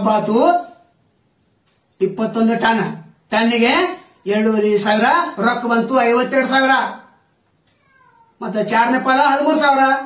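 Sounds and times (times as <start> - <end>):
man talking loudly: 0.0 - 0.8, 2.0 - 7.1, 8.4 - 10.0.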